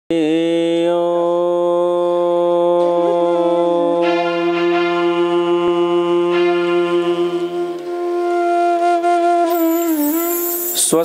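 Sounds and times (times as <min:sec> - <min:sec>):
man chanting: 0:00.1 - 0:07.8, 0:09.7 - 0:11.0.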